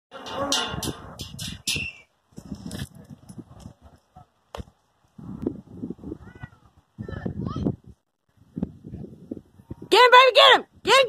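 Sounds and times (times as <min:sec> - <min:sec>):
wind rumble on microphone: 0:00.5 - 0:11.0.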